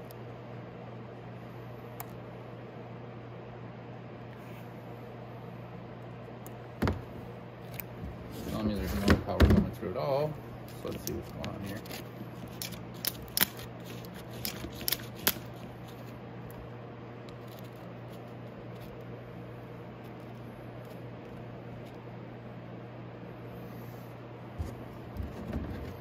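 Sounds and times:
battery charger humming: 10.7s - 16.7s.

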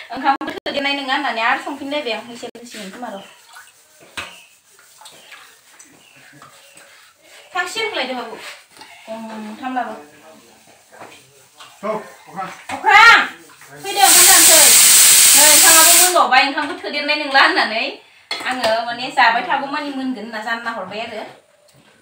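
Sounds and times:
people talking: 0.0s - 3.4s, 9.1s - 21.4s
loud steady hiss: 13.9s - 16.3s.

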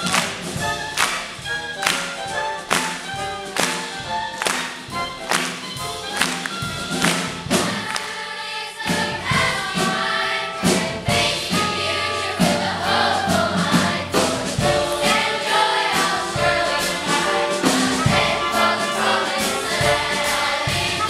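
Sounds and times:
children's choir singing: 0.0s - 21.0s
sharp percussive beats: 0.0s - 21.0s.

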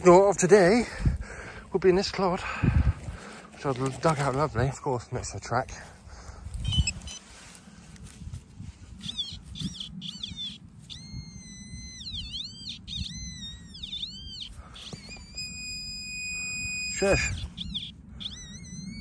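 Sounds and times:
rustling of soil: 1.7s - 10.0s
metal detector warbling beeps: 6.6s - 7.2s, 9.0s - 19.0s.

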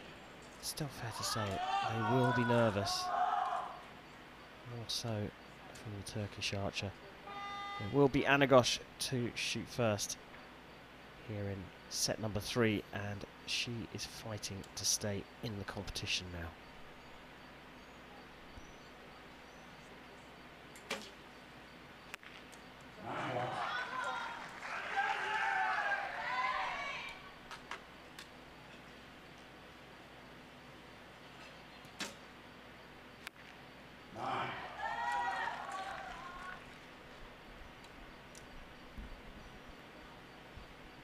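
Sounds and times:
faint steady hiss: 0.0s - 41.0s
bow string snap: 20.8s - 21.2s, 32.0s - 32.2s.

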